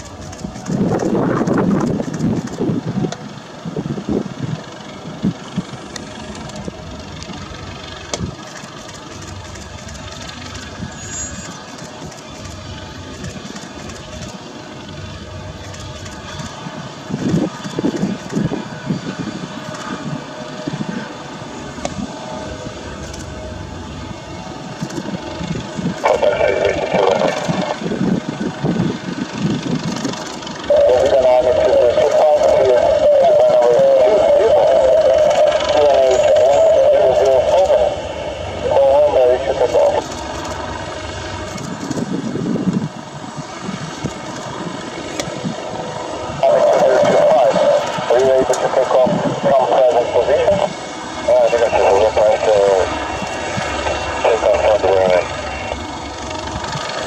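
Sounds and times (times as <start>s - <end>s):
helicopter turbine and rotor noise: 0.0s - 57.0s.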